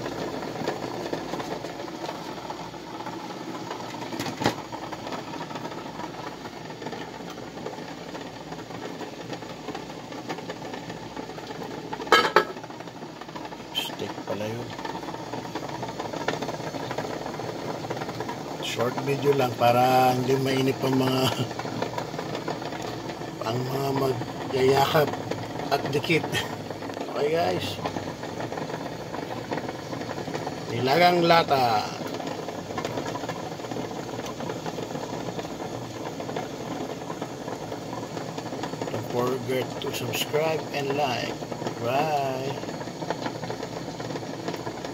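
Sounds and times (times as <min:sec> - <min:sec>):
tin cans rattling in a pot: 0:00.0 - 0:44.9
water boiling in a pot: 0:00.0 - 0:44.9.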